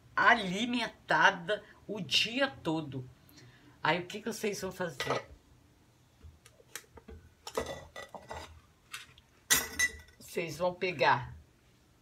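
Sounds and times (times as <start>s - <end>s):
utensils clinking against bowl: 9.5s - 10.2s.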